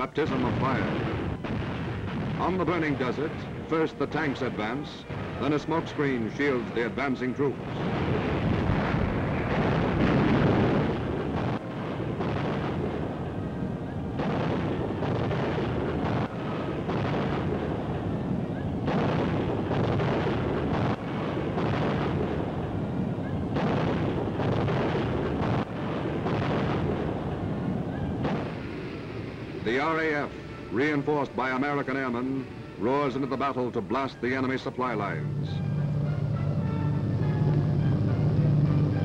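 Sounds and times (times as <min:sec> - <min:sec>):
explosions: 0:00.0 - 0:39.0
gunfire cracks: 0:07.6 - 0:13.2, 0:14.2 - 0:17.9, 0:18.8 - 0:22.6, 0:23.5 - 0:27.3, 0:28.2 - 0:28.9.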